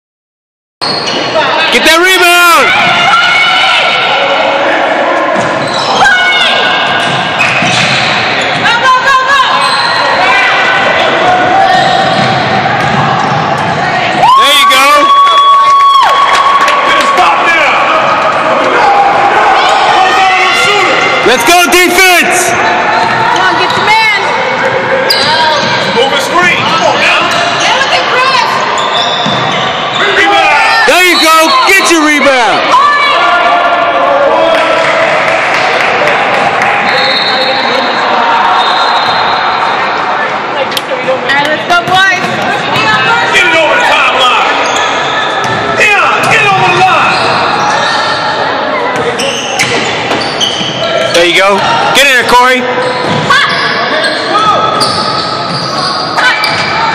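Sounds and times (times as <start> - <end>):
sneakers squealing: 0.8 - 1.8, 5.2 - 15.5, 19.6 - 33.2, 36.8 - 39.9, 41.8 - 56.9
voices around the court: 0.8 - 56.9
basketball bouncing: 12.1 - 13.9, 45.4 - 46.8.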